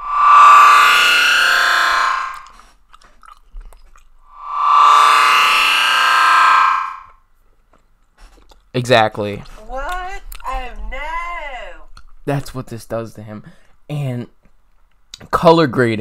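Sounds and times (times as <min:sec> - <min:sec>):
loud musical sound effect: 0:00.0 - 0:02.6, 0:04.3 - 0:07.1.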